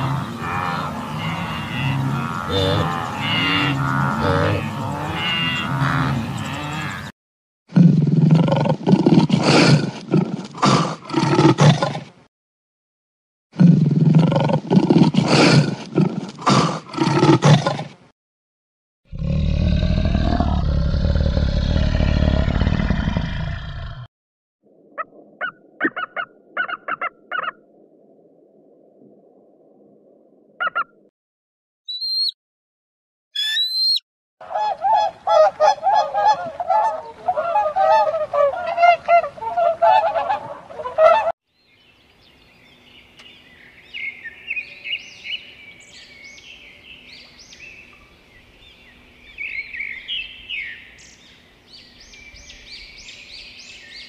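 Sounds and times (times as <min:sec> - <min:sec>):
deep noisy animal call: 0:00.0 - 0:07.1, 0:19.1 - 0:24.1
wildebeest herd calling: 0:00.0 - 0:07.1
lion roaring: 0:13.6 - 0:17.9, 0:19.1 - 0:24.1.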